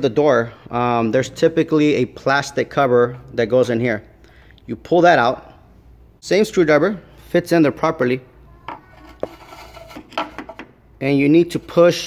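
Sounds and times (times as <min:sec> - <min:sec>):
screwdriver scraping and clicking on metal: 0:08.8 - 0:10.7.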